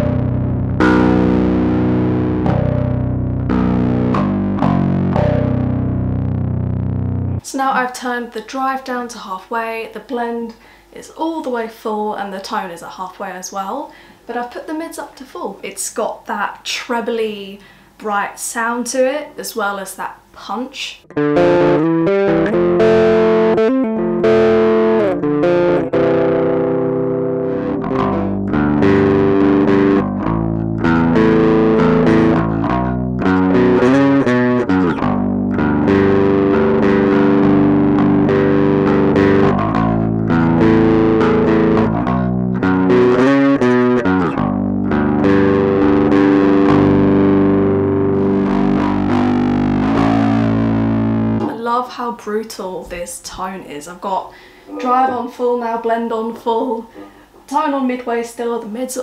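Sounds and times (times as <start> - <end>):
distorted bass guitar riff: 0.0 - 7.4, 21.1 - 51.5.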